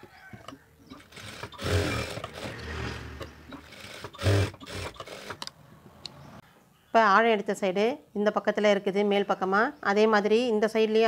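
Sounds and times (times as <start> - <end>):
sewing machine stitching: 0.4 - 5.5.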